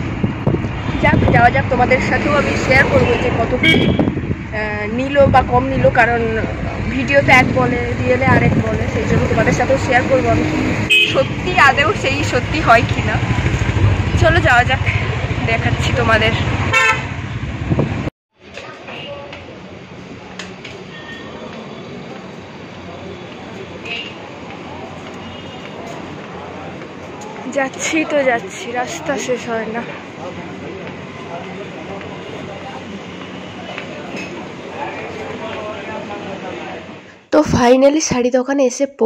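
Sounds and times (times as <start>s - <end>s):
crowd and street rumble: 0.0s - 38.2s
vehicle horn honking: 3.0s - 4.2s, 10.9s - 11.4s, 16.7s - 17.2s.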